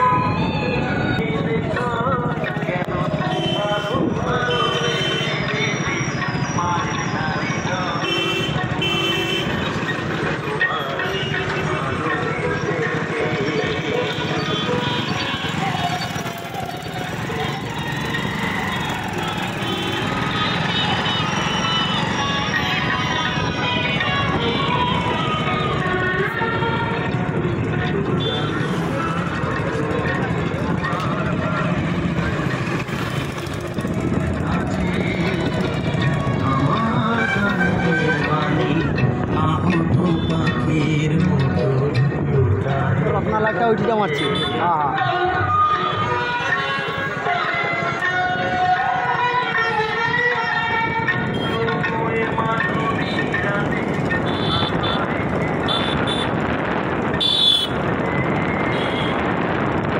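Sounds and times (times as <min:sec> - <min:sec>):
indistinct voices: 0:00.0 - 0:08.8, 0:09.4 - 0:56.9
street noise: 0:00.0 - 0:59.9
vehicle horn blasts: 0:03.3 - 0:05.4, 0:08.0 - 0:09.6, 0:19.6 - 0:21.2, 0:44.2 - 0:44.6, 0:54.2 - 0:56.4, 0:57.2 - 0:57.8, 0:58.7 - 0:59.3
motorcycle engine running: 0:13.0 - 0:38.5, 0:51.2 - 0:59.9.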